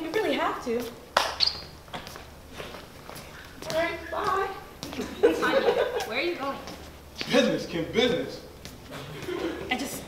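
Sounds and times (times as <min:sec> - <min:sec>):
footsteps on stage floor: 0:00.0 - 0:10.0
brief high squeak: 0:01.4 - 0:01.7.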